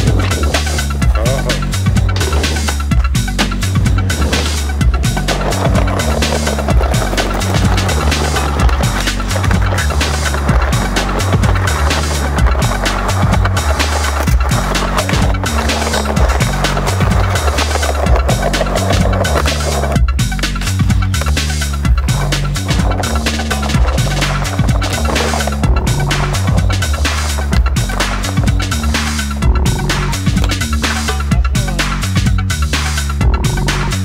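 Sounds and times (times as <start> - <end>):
skateboard clacks: 0.0 - 32.0
skateboard wheels rolling on concrete: 0.0 - 33.2
electronic music with heavy bass: 0.0 - 34.0.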